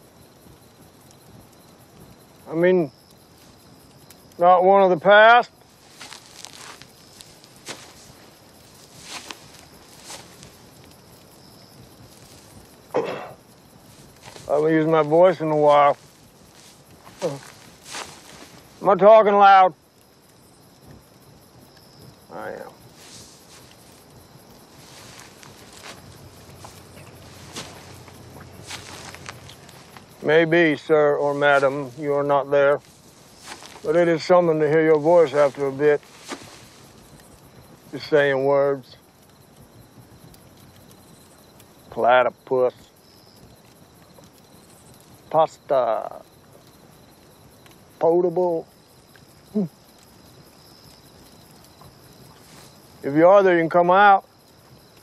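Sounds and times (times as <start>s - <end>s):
crickets chirping: 0.0s - 55.0s
quiet night background hush: 0.0s - 55.0s.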